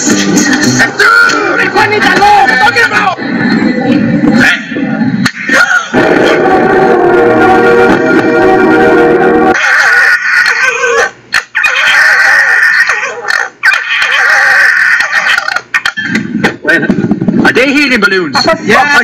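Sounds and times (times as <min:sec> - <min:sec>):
music: 0:00.0 - 0:09.6
foxes screaming: 0:09.5 - 0:16.2.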